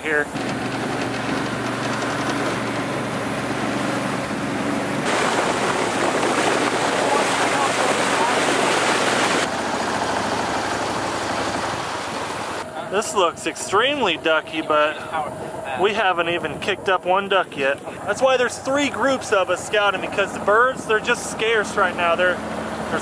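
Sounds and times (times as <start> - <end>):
boat engine drone: 0.0 - 23.0
water and hull noise: 0.0 - 23.0.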